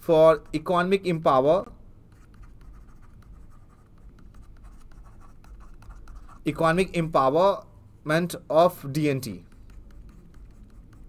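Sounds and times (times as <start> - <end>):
stylus scratching and tapping tablet: 0.0 - 7.4, 9.0 - 11.0.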